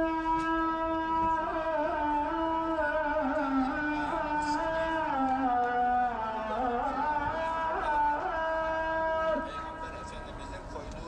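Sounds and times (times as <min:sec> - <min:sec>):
man singing call to prayer: 0:00.0 - 0:11.0.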